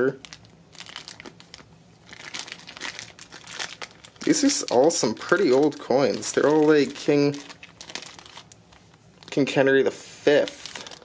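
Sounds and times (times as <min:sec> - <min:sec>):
plastic bag of coins crinkling: 0:00.2 - 0:09.5, 0:10.4 - 0:11.0.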